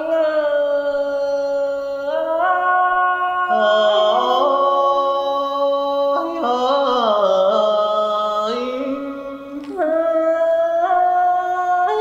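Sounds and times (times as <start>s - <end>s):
woman singing unaccompanied: 8.4s - 12.0s.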